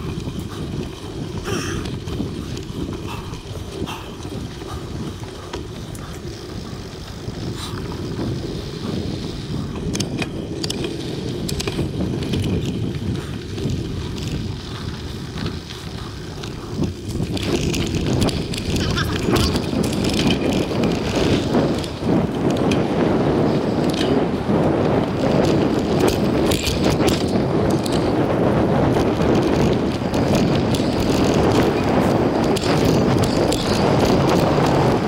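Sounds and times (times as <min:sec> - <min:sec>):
bike clicks and rattles: 0:00.0 - 0:35.0
bike tyres rolling over dirt: 0:00.0 - 0:35.0
wind on microphone: 0:00.0 - 0:35.0.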